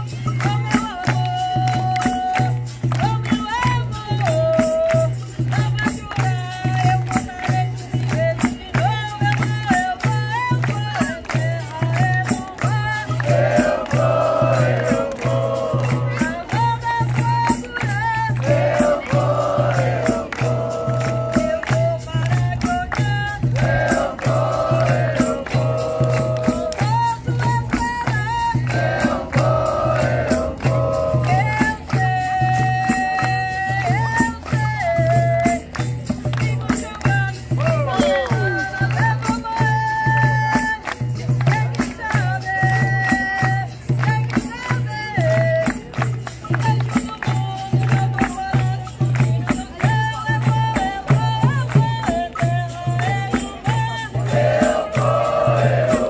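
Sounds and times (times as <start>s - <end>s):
hand clapping: 0.0s - 56.0s
hand drum beat: 0.0s - 56.0s
tambourine: 0.0s - 56.0s
group chorus singing: 13.2s - 16.2s, 18.4s - 21.5s, 23.6s - 26.8s, 28.6s - 31.6s, 54.3s - 56.0s
lead singer calling: 37.6s - 39.0s.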